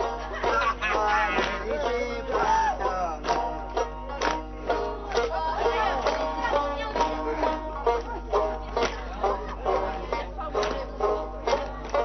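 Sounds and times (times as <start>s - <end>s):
plucked lute dance tune: 0.0s - 12.0s.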